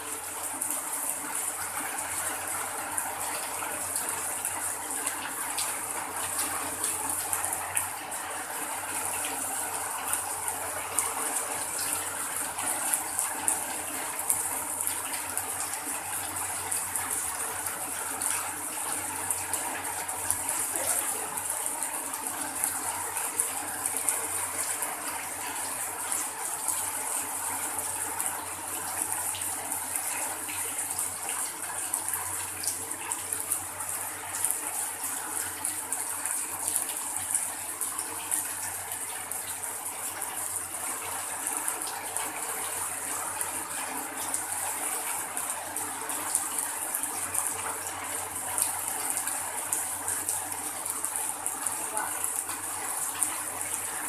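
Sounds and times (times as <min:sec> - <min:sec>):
heavy rain on metal roof: 0:00.0 - 0:54.0
rain splashing on concrete: 0:00.0 - 0:54.0
water pouring off roof: 0:00.0 - 0:54.0.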